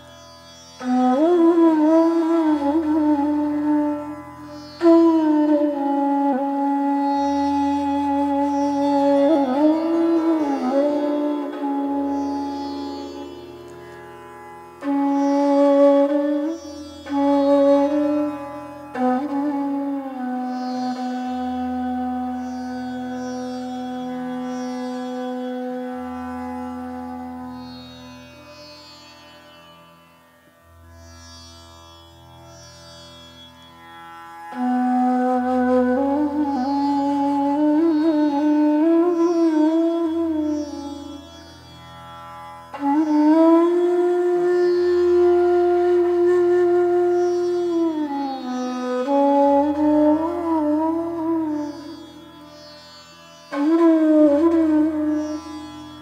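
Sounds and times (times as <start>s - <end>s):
bamboo flute playing: 0.8s - 14.0s, 14.8s - 27.7s, 34.5s - 41.8s, 42.7s - 56.0s.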